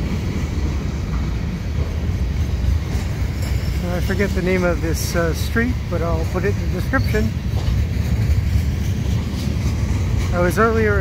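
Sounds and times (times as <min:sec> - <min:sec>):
freight train rumbling past: 0:00.0 - 0:11.0.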